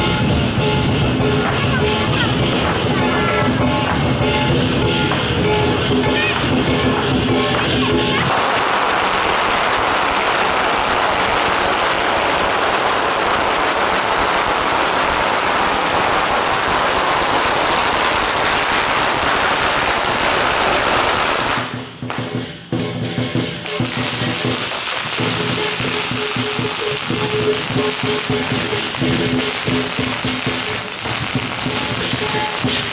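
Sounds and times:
firecrackers crackling: 0:00.0 - 0:32.9
procession music: 0:23.6 - 0:32.9.

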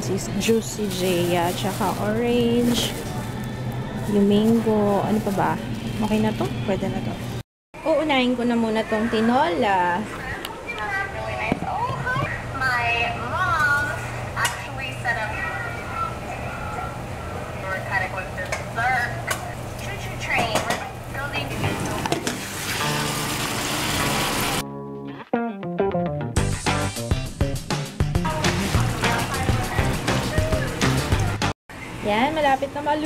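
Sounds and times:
chicken sizzling in a pot: 0:21.5 - 0:24.6
music with steady beat: 0:25.4 - 0:31.5.

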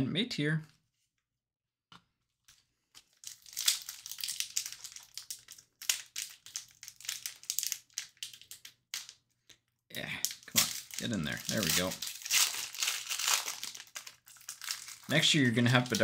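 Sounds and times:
foil wrapper crinkling and tearing: 0:02.5 - 0:09.2, 0:10.2 - 0:16.0.

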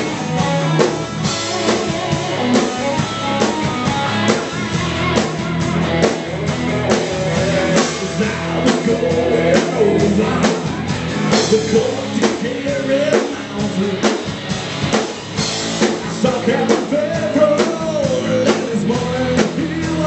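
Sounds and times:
bass guitar: 0:00.0 - 0:20.0
drum kit beat: 0:00.0 - 0:20.0
overdriven electric guitars: 0:00.0 - 0:20.0.

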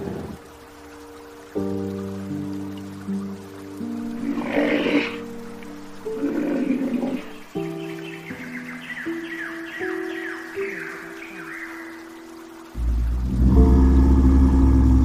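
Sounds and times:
sustained background music: 0:00.0 - 0:15.0
rough noisy animal calls: 0:04.0 - 0:14.9.

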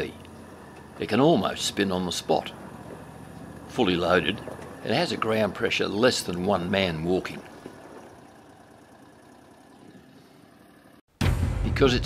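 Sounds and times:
faint vehicle engine running: 0:00.0 - 0:11.1.

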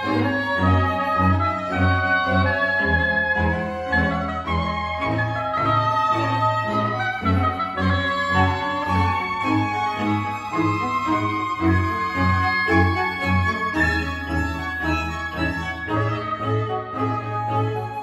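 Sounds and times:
chamber ensemble playing: 0:00.0 - 0:18.0.

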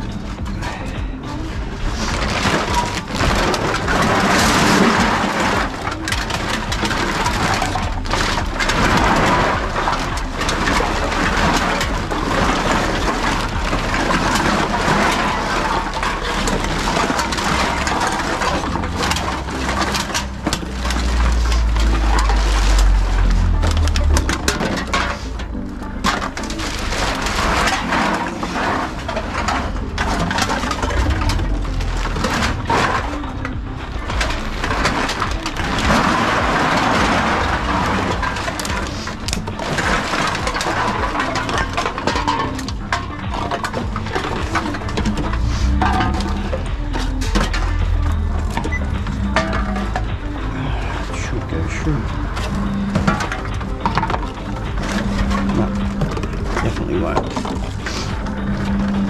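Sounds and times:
containers clattering and crushing: 0:00.0 - 0:59.0
low machine rumble: 0:00.0 - 0:59.0.

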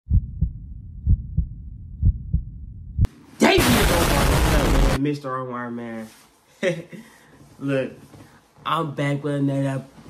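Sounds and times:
heartbeat thumps: 0:00.1 - 0:03.1
harsh burst of noise: 0:03.4 - 0:05.0.

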